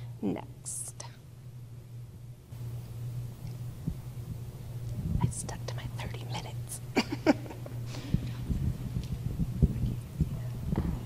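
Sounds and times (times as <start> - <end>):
sound system hum: 0.0 - 11.0
person whispering: 5.2 - 6.8
microphone handling thump: 8.0 - 11.0.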